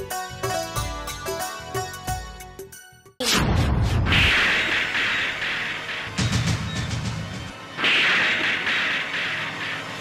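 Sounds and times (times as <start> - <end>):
background music: 0.0 - 3.2, 4.2 - 10.0.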